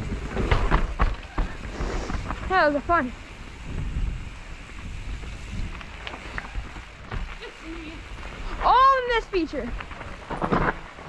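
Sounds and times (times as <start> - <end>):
bike clicks and rattles: 0.0 - 11.0
tyres rumbling over dirt: 0.0 - 11.0
wind buffeting microphone: 0.0 - 11.0.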